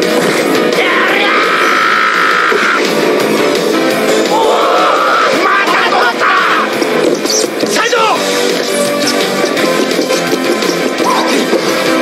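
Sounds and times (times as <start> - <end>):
rock music: 0.0 - 12.0
man yelling: 4.4 - 6.7.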